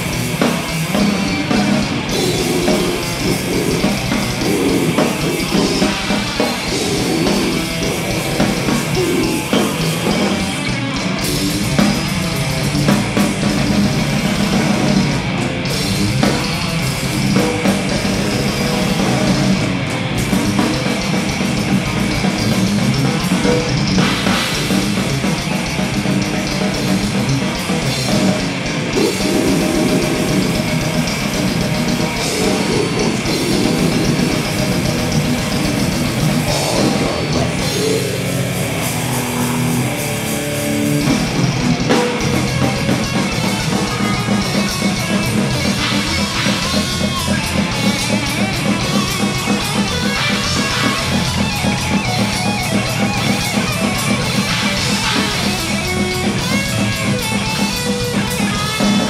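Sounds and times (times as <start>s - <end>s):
bass guitar: 0.0s - 59.0s
death metal band playing live: 0.0s - 59.0s
distorted electric guitar: 0.0s - 59.0s
fast drumming: 0.0s - 59.0s.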